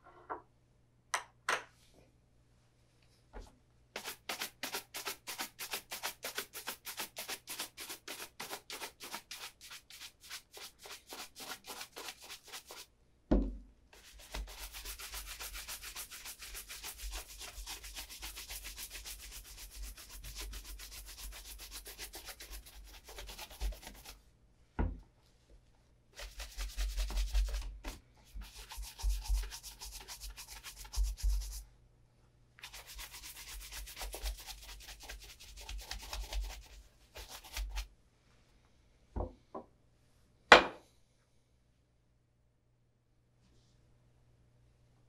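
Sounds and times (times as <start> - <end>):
brush stroking leather shoe: 14.0 - 24.2
shoe thumping on wooden table: 40.5 - 40.8.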